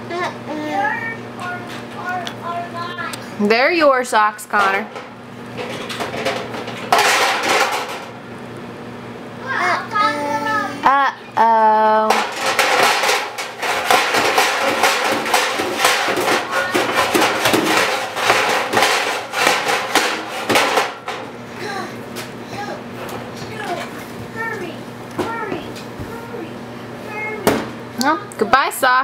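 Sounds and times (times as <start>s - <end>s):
toddler babbling: 0.0s - 3.2s, 9.4s - 11.2s, 21.6s - 27.5s
metal items rattling in drawer: 4.6s - 8.1s, 12.1s - 21.2s.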